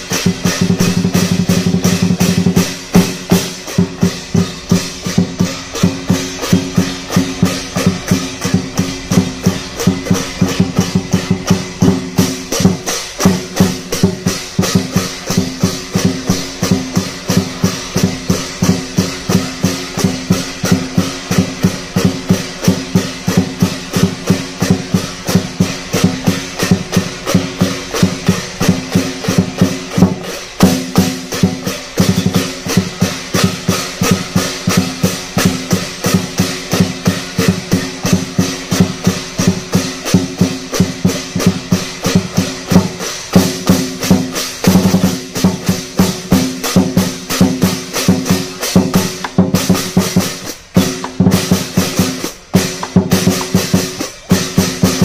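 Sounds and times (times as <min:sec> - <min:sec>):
cymbals clashing: 0:00.0 - 0:55.0
large drum beating fast: 0:00.0 - 0:55.0.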